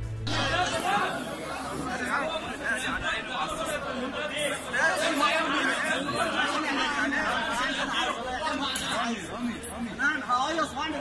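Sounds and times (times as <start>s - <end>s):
intro music: 0.0s - 1.1s
men arguing and shouting: 0.2s - 11.0s.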